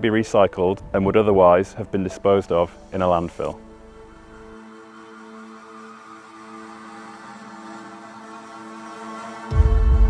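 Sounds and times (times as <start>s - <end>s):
soft sustained music chord: 0.0s - 10.0s.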